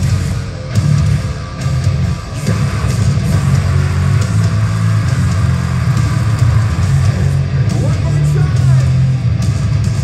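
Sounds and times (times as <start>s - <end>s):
distorted electric guitars: 0.0s - 10.0s
drums: 0.0s - 10.0s
heavy low end: 0.0s - 10.0s.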